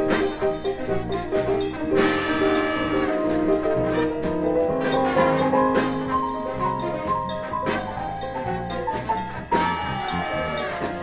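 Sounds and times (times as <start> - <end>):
jazz ensemble playing: 0.0 - 11.0.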